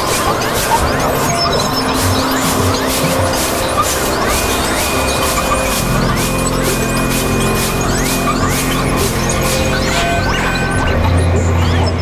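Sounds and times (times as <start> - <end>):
electronic noise drone: 0.0 - 12.0
pulsing low synth: 0.0 - 12.0
rising synth pitch glides: 0.0 - 12.0.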